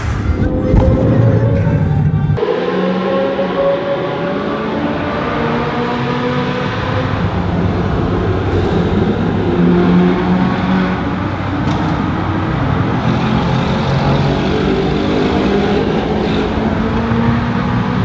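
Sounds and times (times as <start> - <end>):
car engines running: 0.0 - 18.0
tyre and road roar in tunnel: 0.0 - 18.0.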